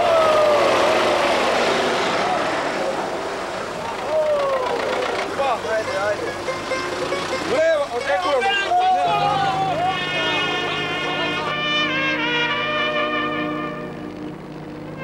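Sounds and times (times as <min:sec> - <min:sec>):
men shouting: 0:00.0 - 0:02.8, 0:04.0 - 0:04.9, 0:07.4 - 0:11.7
tractor engines running: 0:00.0 - 0:15.0.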